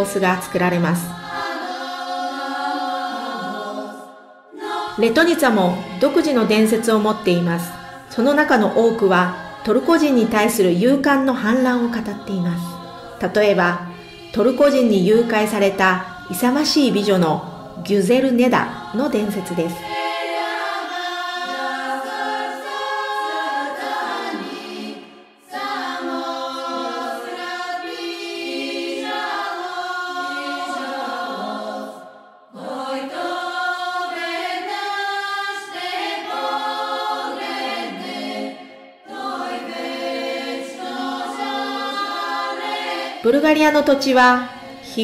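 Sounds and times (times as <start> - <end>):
choir singing a cappella: 0.0 - 45.0.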